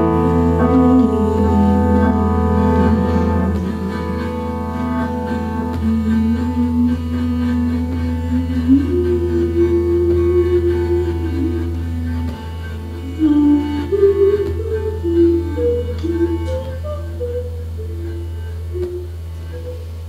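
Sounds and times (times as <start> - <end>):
slow jazz ensemble music: 0.0 - 20.0.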